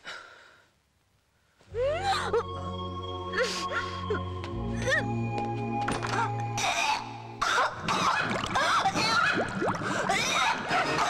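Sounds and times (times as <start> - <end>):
film background music: 1.7 - 8.8, 9.6 - 11.0.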